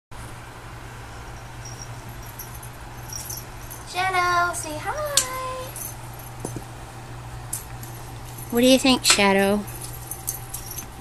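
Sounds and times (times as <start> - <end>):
steady low hum: 0.2 - 11.0
collar tag jingling: 1.3 - 6.7, 7.6 - 11.0.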